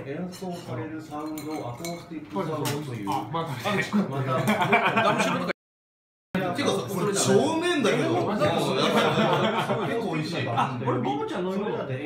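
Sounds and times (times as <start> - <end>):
people talking: 0.0 - 5.6, 6.4 - 12.0
tableware clinking: 0.2 - 3.3.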